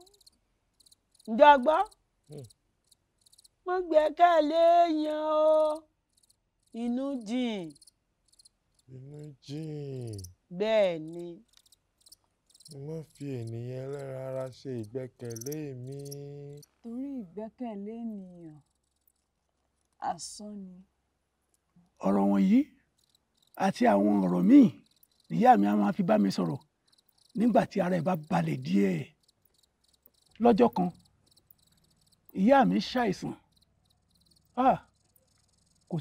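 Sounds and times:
crickets chirping: 0:00.0 - 0:17.2, 0:18.4 - 0:19.3, 0:22.0 - 0:36.0
person holding a sung note: 0:08.9 - 0:10.2, 0:12.7 - 0:16.6
person speaking: 0:08.9 - 0:10.3, 0:12.7 - 0:17.5, 0:22.0 - 0:22.7, 0:23.6 - 0:26.6, 0:27.4 - 0:29.1, 0:30.4 - 0:31.0, 0:32.4 - 0:33.4, 0:34.6 - 0:34.8.

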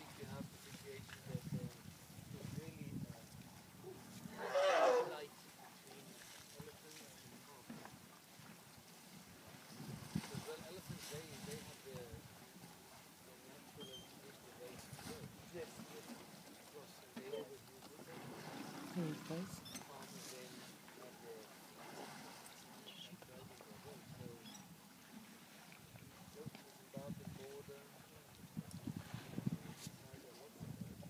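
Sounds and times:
people talking: 0:00.0 - 0:01.7, 0:10.3 - 0:12.2, 0:13.3 - 0:16.1, 0:16.8 - 0:18.2, 0:19.0 - 0:21.4, 0:22.9 - 0:24.4, 0:26.4 - 0:27.9
wind on microphone: 0:00.0 - 0:04.4, 0:09.2 - 0:12.4, 0:25.8 - 0:27.7, 0:28.3 - 0:31.0
elephant trumpeting: 0:04.4 - 0:05.2.

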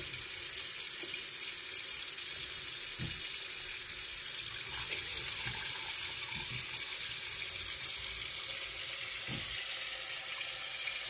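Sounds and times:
tap water splashing into sink: 0:00.0 - 0:01.6, 0:02.2 - 0:11.0.

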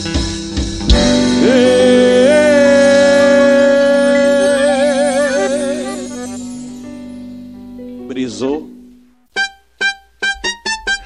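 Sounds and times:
staccato electronic keyboard notes: 0:00.0 - 0:08.1, 0:08.8 - 0:11.0.

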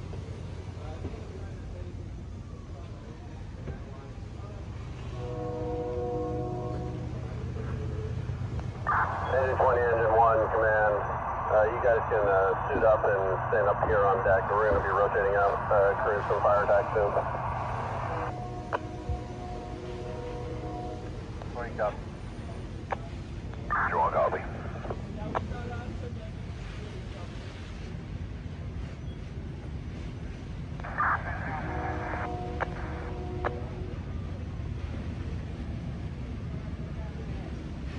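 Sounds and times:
fire engines idling: 0:00.0 - 0:37.9
steady tones: 0:07.6 - 0:25.0
voice over handheld radio: 0:08.9 - 0:18.3, 0:21.6 - 0:22.0, 0:23.7 - 0:26.0, 0:30.8 - 0:33.6.

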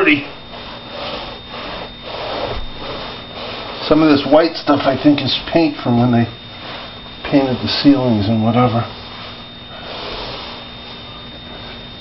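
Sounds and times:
steam cleaner hissing: 0:00.0 - 0:12.0
scrubbing on stone: 0:00.4 - 0:11.8.

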